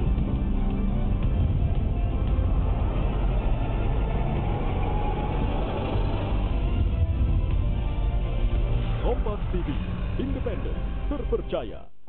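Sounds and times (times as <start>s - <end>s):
theme music with heavy bass: 0.0s - 11.9s.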